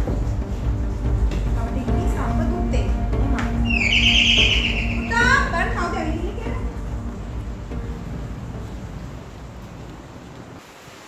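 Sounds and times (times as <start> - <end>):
film score music: 0.0 - 10.4.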